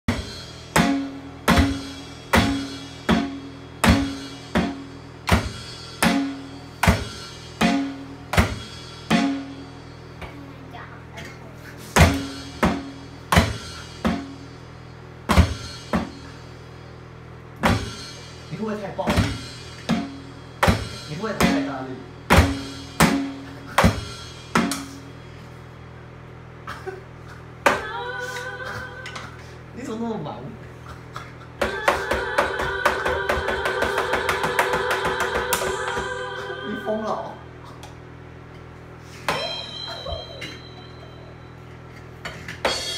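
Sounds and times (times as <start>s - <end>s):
electronic drum hits: 0.1s - 10.2s, 12.0s - 16.4s, 17.6s - 25.0s.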